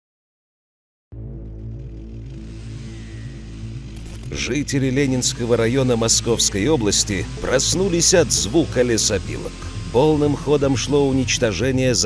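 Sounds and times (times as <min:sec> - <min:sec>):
background music with low chords: 0:01.1 - 0:12.0.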